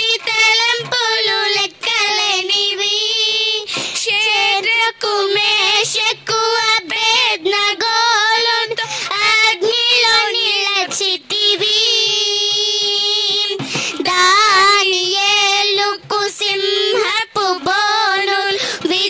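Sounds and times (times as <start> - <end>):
girls singing: 0.0 - 19.0.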